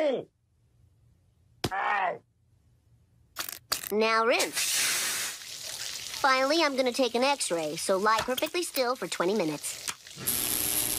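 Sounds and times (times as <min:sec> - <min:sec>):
cartoon dental drill bursts: 0:10.2 - 0:10.9.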